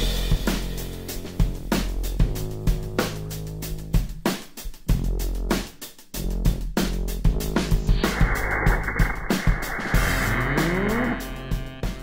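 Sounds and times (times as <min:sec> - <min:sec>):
low brass rising glide: 0:07.8 - 0:11.5.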